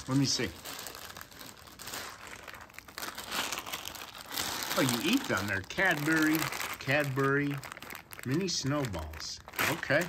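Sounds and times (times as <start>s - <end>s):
plastic candy bag crinkling: 0.0s - 10.0s.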